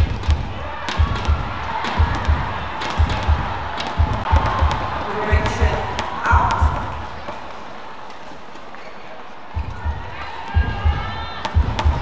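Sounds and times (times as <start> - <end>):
rackets hitting shuttlecock: 0.0 - 10.6, 11.3 - 12.0
shoes thudding on court: 0.0 - 12.0
steady hall noise: 0.0 - 12.0
person shouting: 5.0 - 7.0.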